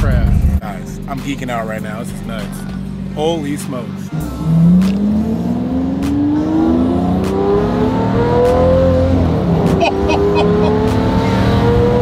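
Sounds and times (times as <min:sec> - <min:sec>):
car engine accelerating: 0:04.1 - 0:12.0.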